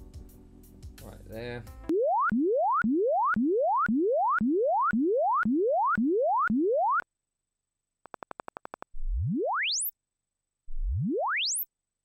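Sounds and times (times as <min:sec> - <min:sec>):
short electronic pulses: 0:08.1 - 0:09.9, 0:10.7 - 0:11.7
rising sine sweeps: 0:09.0 - 0:09.9, 0:10.7 - 0:11.7.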